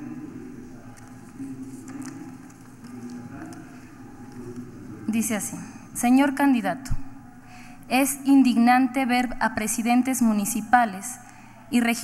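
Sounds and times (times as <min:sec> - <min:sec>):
low background hum: 0:00.0 - 0:12.0
paper crinkling: 0:00.8 - 0:04.8.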